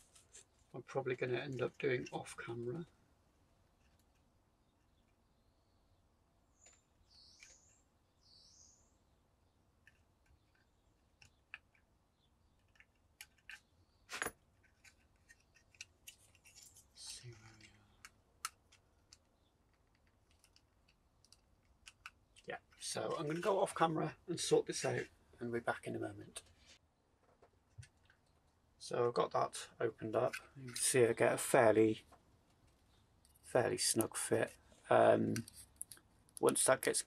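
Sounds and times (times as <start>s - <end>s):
plastic parts clicking and tapping: 17.6s - 22.8s.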